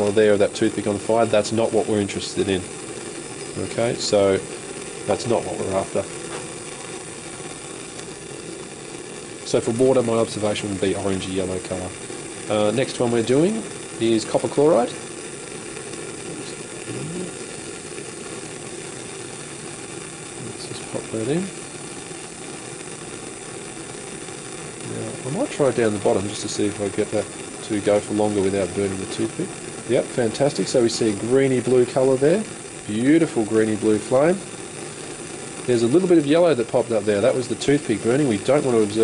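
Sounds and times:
bunsen burner flame rushing: 0.0 - 39.0.

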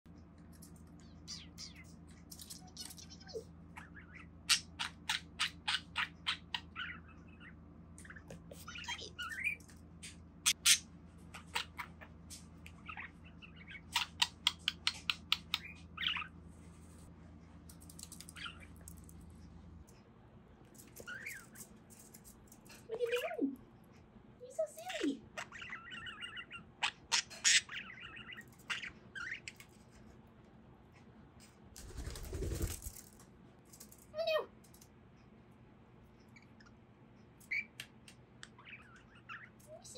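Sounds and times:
budgerigar chirping: 2.8 - 9.6, 10.5 - 12.0, 25.3 - 29.4.

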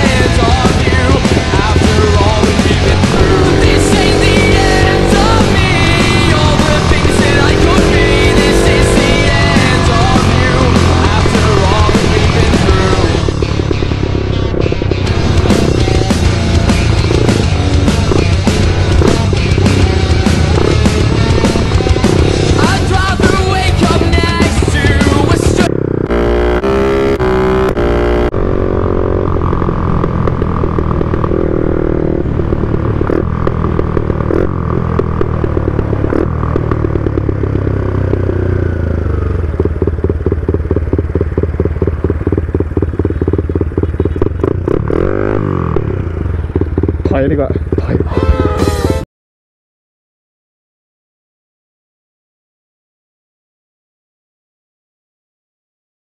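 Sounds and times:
music playing: 0.0 - 28.3, 47.8 - 49.0
motorcycle engine running: 0.0 - 49.1.

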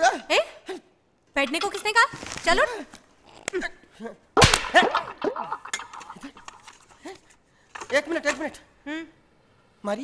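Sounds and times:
dialogue: 0.0 - 10.0.

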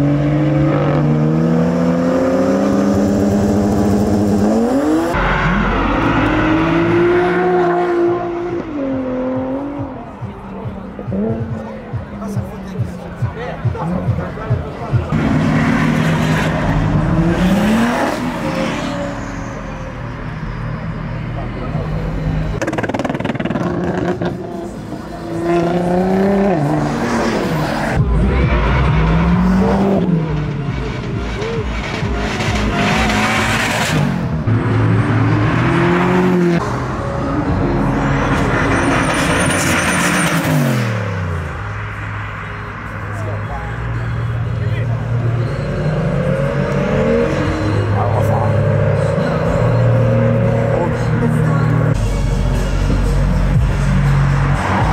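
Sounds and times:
car engines revving and accelerating: 0.0 - 54.9.

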